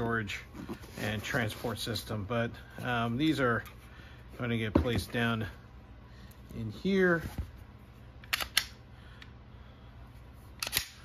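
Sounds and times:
steady low hum: 0:00.0 - 0:11.0
handgun clicks: 0:08.2 - 0:08.8, 0:10.6 - 0:11.0.

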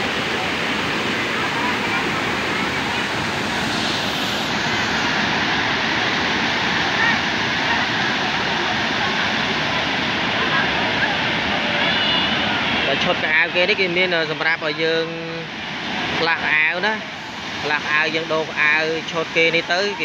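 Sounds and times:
waterfall rushing over rock: 0:00.0 - 0:20.0.

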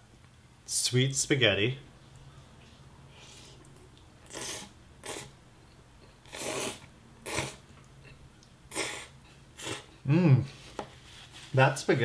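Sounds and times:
faint low hum: 0:00.0 - 0:12.0
person slurping and chewing: 0:04.2 - 0:05.4, 0:06.0 - 0:10.0.

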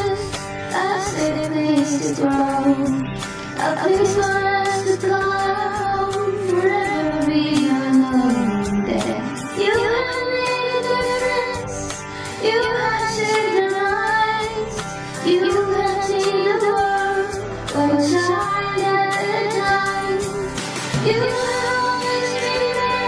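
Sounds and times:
girl singing: 0:00.0 - 0:03.0, 0:03.6 - 0:11.8, 0:12.4 - 0:23.0
backing track with steady beat: 0:00.0 - 0:23.0.

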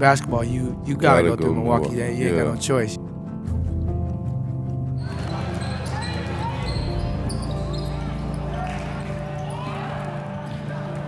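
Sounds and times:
background music with low notes: 0:00.0 - 0:11.0.

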